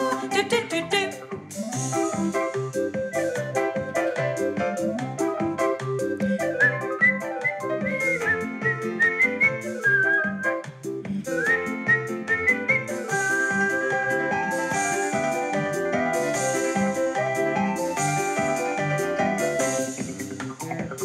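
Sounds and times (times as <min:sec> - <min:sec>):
steady beat: 0:00.0 - 0:09.8, 0:10.5 - 0:21.0
keyboard chords: 0:00.0 - 0:21.0
whistled melody: 0:01.2 - 0:21.0.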